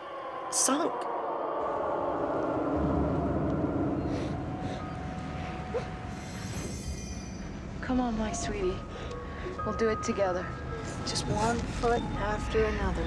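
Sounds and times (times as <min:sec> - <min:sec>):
rumbling drone: 0:01.3 - 0:13.0.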